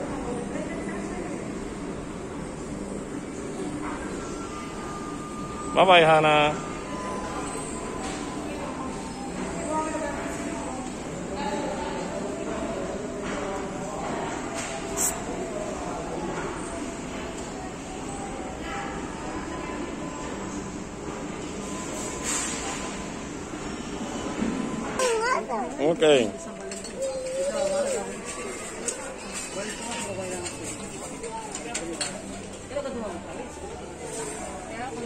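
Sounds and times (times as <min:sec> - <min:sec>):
indistinct voices: 0:25.0 - 0:35.0.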